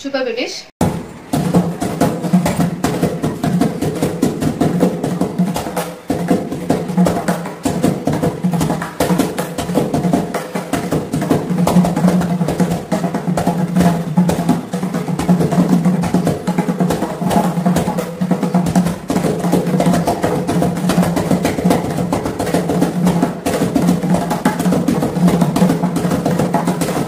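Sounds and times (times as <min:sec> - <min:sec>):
barrel drum played by hand: 0:00.8 - 0:27.0.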